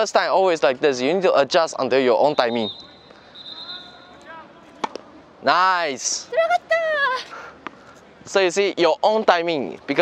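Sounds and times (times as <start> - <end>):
tennis racket striking ball: 4.8 - 5.1.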